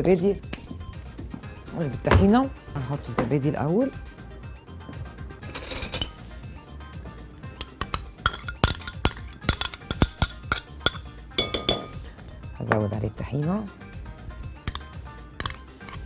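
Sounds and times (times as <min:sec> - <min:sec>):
metal spoon clinking on glass bowl: 0:05.6 - 0:06.2, 0:07.6 - 0:12.8, 0:14.4 - 0:16.0.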